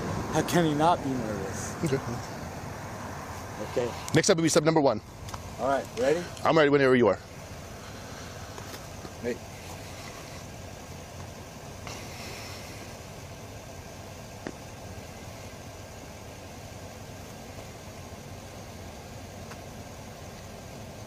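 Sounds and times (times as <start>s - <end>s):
background hiss: 0.0s - 21.0s
vehicle engine idling: 0.0s - 21.0s.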